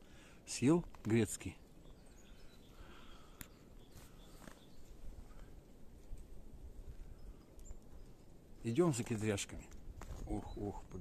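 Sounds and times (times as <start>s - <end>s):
low wind rumble: 0.0s - 11.0s
faint bird chirps: 0.5s - 5.6s, 6.8s - 11.0s.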